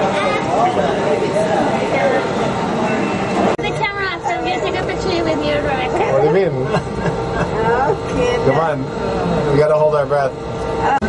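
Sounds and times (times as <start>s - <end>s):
people talking and chattering: 0.0s - 11.0s
steady hum: 0.0s - 11.0s.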